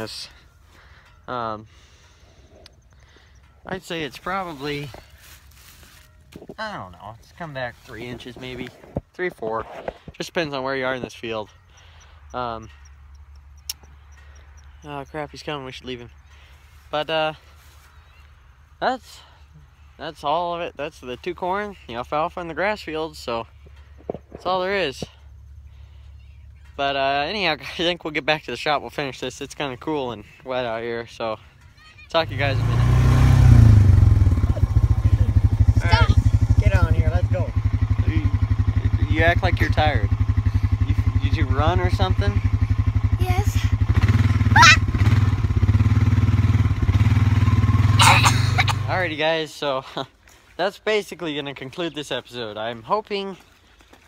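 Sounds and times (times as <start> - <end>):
engine idling: 0.0 - 8.6, 10.0 - 17.9, 20.8 - 49.2
child calling out: 31.8 - 32.1, 35.8 - 36.3, 43.2 - 43.7, 44.5 - 44.9
steady low rumble: 33.6 - 43.9.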